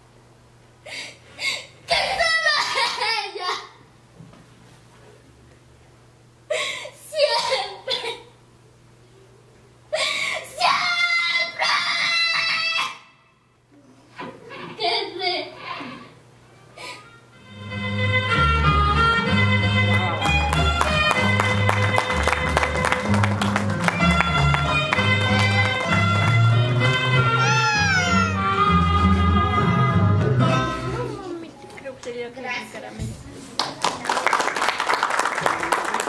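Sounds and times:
girl wailing: 0:27.4 - 0:28.5.

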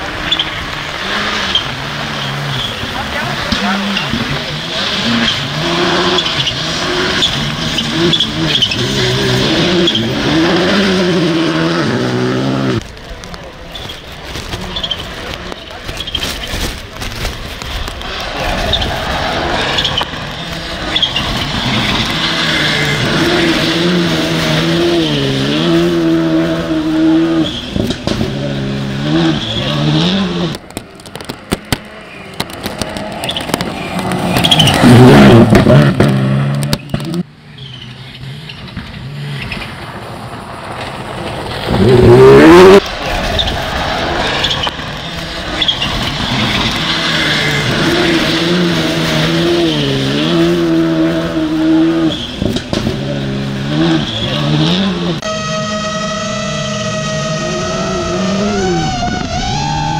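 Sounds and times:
rally car engine revving: 0:00.0 - 0:59.9.

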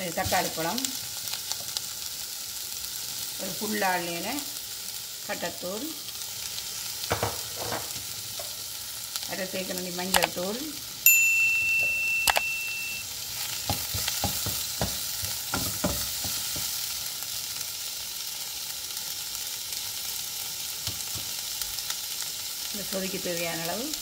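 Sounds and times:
vegetables sizzling in a pot: 0:00.0 - 0:24.0
metallic ding: 0:11.1 - 0:13.0
wooden spoon knocking a pot: 0:13.6 - 0:16.7.

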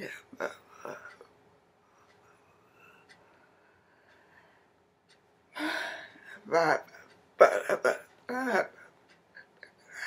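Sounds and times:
woman gasping: 0:05.6 - 0:06.4.

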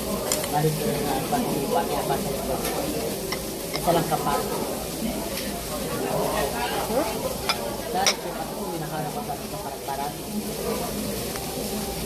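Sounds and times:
pork sizzling on a grill: 0:00.0 - 0:12.0.

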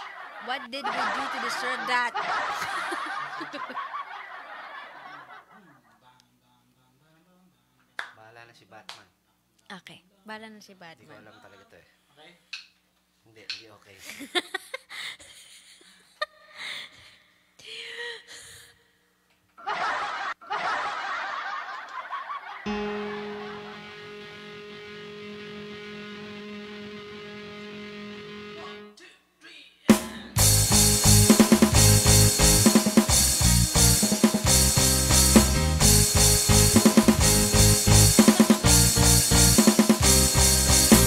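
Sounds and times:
woman laughing into a microphone: 0:00.0 - 0:04.3, 0:14.0 - 0:17.1
people laughing: 0:00.0 - 0:06.1, 0:19.6 - 0:24.4.

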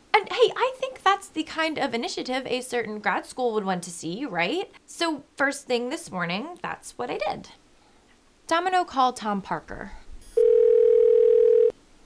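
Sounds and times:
telephone ringback tone: 0:10.4 - 0:11.8.

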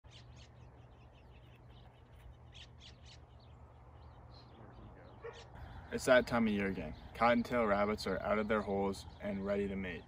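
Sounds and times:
bird chirps: 0:00.0 - 0:10.0.

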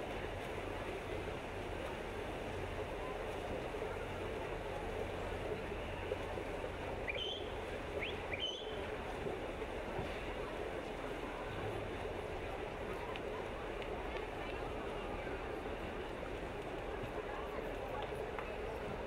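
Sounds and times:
murmur of spectators: 0:00.0 - 0:19.0
swimmers splashing: 0:00.0 - 0:19.0.

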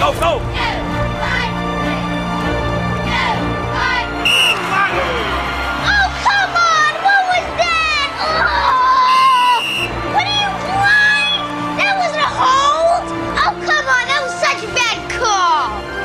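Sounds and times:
crowd shouting and cheering: 0:00.0 - 0:16.0
film score music: 0:00.0 - 0:16.0
referee's whistle: 0:04.2 - 0:04.9, 0:09.1 - 0:10.0.

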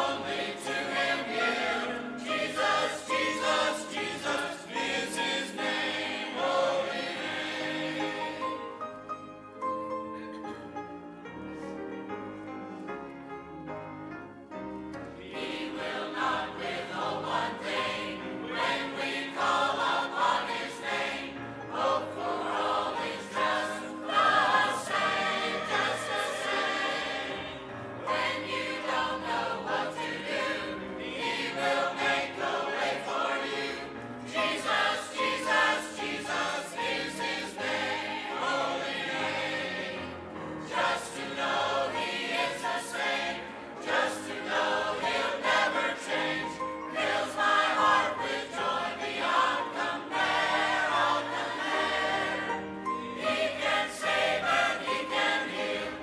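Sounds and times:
congregation singing a hymn: 0:00.0 - 0:09.3, 0:14.9 - 0:56.0.

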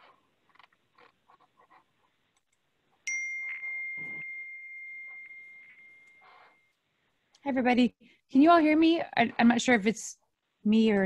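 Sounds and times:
high bell-like ding: 0:03.1 - 0:06.7.

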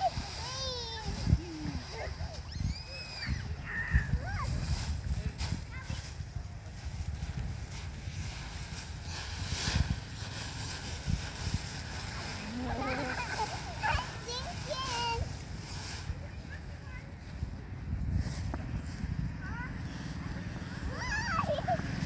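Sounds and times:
dry leaves rustling and crunching: 0:00.0 - 0:22.0.

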